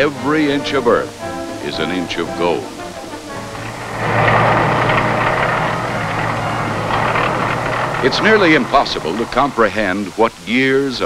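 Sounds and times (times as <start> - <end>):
tracked vehicles engines rumbling: 0.0 - 11.0
constant low hum: 1.1 - 10.5.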